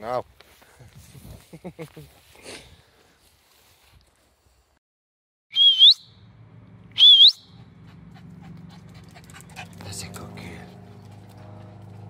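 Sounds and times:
person whistling: 0:05.5 - 0:06.1, 0:07.0 - 0:07.5.

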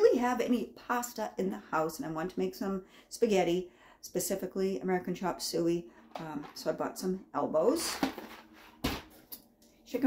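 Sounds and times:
grocery item knocking on counter: 0:08.0 - 0:09.1.

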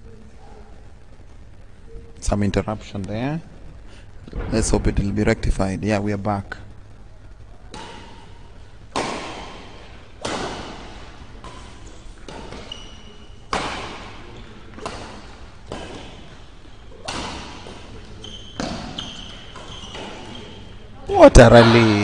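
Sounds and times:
racket striking shuttlecock: 0:08.9 - 0:14.2, 0:17.0 - 0:17.8
shoes squeaking on court floor: 0:10.2 - 0:20.9.

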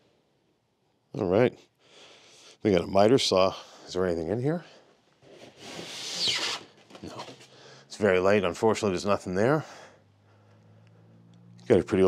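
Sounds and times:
styrofoam squeaking against cardboard: 0:05.5 - 0:07.4.

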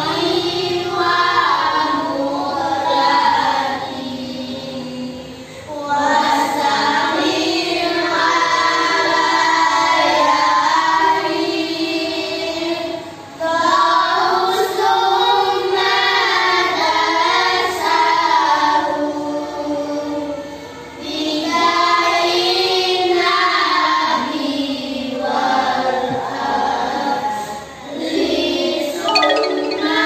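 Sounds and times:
girls singing in unison: 0:00.0 - 0:20.4, 0:21.0 - 0:30.0.

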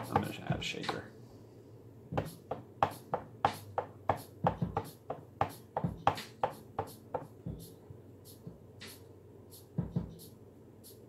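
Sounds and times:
kick drum: 0:00.0 - 0:00.8, 0:02.1 - 0:02.4, 0:04.4 - 0:04.9, 0:05.8 - 0:06.2, 0:07.5 - 0:07.7, 0:09.8 - 0:10.2
drum loop: 0:00.0 - 0:01.1, 0:02.1 - 0:11.0.

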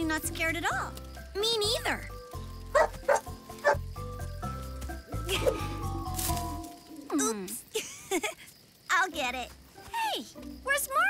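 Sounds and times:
soft background music: 0:00.0 - 0:07.5, 0:09.0 - 0:11.0.

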